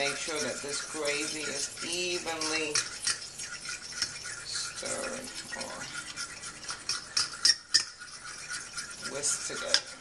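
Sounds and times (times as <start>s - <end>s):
fork scraping a metal pan: 0.0s - 10.0s.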